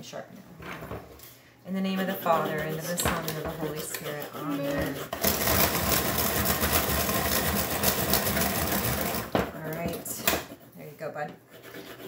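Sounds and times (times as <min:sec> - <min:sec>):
pencil scribbling on paper: 0:01.7 - 0:12.0.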